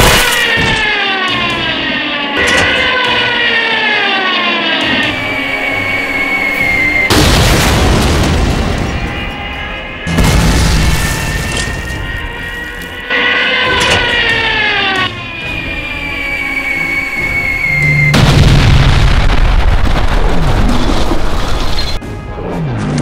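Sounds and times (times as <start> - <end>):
background music: 0.1 - 19.8, 22.0 - 23.0
high falling whistle: 3.5 - 7.1, 10.8 - 18.6
bomb explosions: 6.8 - 12.2, 18.0 - 21.8.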